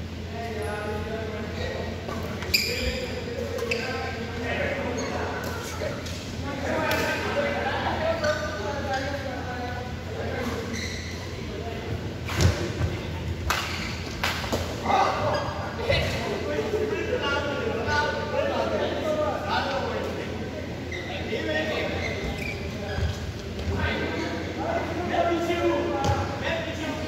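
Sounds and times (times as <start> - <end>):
voices of people: 0.0 - 27.0.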